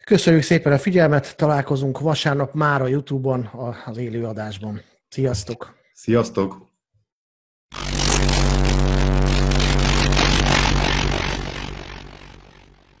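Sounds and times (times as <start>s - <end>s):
loud noisy rush: 7.8s - 12.4s
steady low hum: 7.8s - 12.8s.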